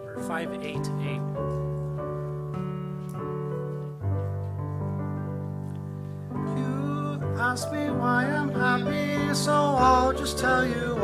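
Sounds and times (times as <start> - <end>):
piano playing sustained chords: 0.0 - 11.0.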